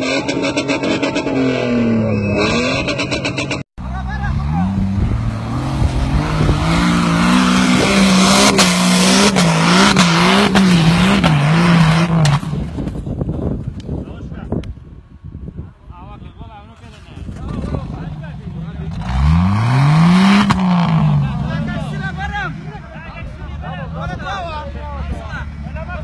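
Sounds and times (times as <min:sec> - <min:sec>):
off-road engine revving hard: 0:00.0 - 0:12.7, 0:17.5 - 0:22.8
onlookers' voices: 0:20.6 - 0:26.0.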